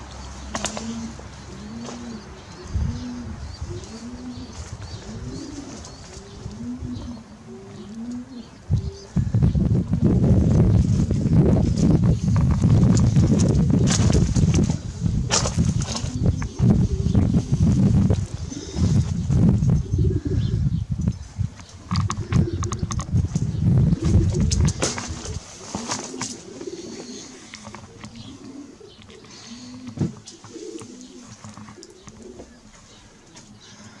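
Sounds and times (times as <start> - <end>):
pigeons cooing: 0.0 - 34.0
heavy low rumble: 8.7 - 25.4.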